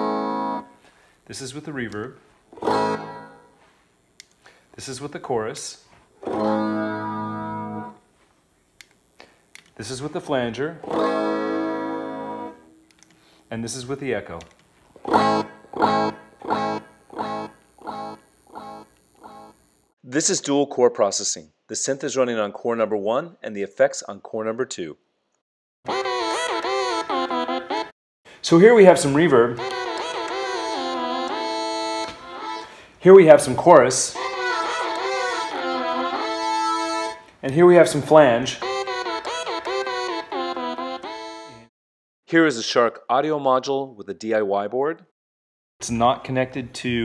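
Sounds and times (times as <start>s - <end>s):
guitar chord with flanger effect: 2.6s - 3.5s, 6.3s - 8.0s, 10.8s - 12.8s, 15.1s - 19.6s, 29.5s - 32.8s, 34.2s - 37.2s.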